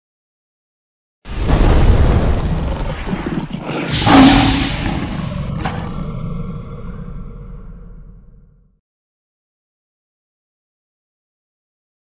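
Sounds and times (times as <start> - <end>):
deep rumbling whoosh: 1.4 - 8.5.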